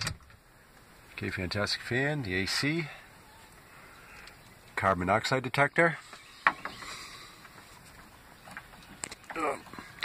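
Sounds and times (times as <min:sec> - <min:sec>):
faint rustle: 0:06.0 - 0:10.0.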